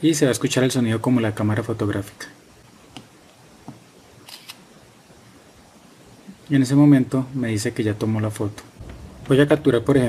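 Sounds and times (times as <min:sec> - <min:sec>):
smartphone camera shutter click: 0:04.2 - 0:04.6.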